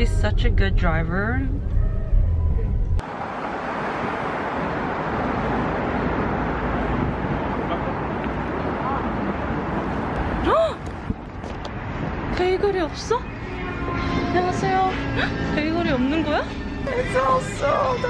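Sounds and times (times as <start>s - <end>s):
car cabin road rumble: 0.0s - 18.0s
street ambience hiss: 3.0s - 18.0s.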